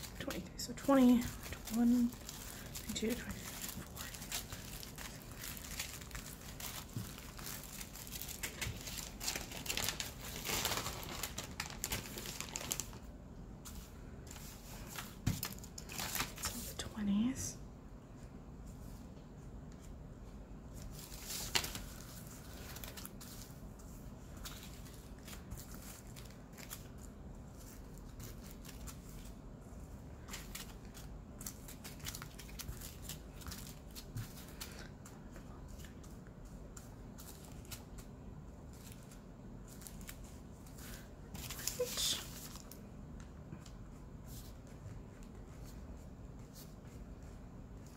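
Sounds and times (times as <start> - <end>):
plastic bags crinkling: 0.0 - 13.1, 15.0 - 16.6, 21.0 - 23.6, 24.4 - 29.2, 30.2 - 34.9.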